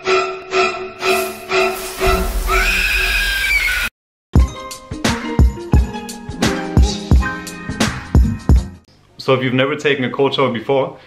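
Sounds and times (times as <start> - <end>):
dramatic music: 1.0 - 3.4
shower spray hissing: 1.0 - 3.9.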